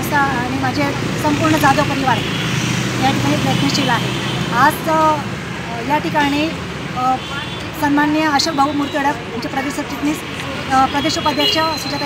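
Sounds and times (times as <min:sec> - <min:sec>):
woman speaking: 0:00.0 - 0:02.2, 0:03.0 - 0:12.0
low hum of vehicle engines: 0:00.0 - 0:12.0.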